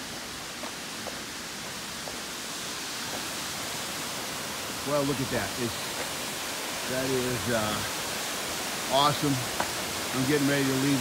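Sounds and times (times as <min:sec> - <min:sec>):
water rushing through dam: 0:00.0 - 0:11.0.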